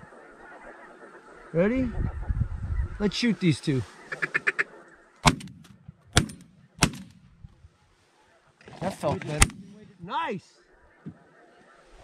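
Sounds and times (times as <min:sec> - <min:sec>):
shotgun shots: 0:05.2 - 0:07.2, 0:09.3 - 0:09.8.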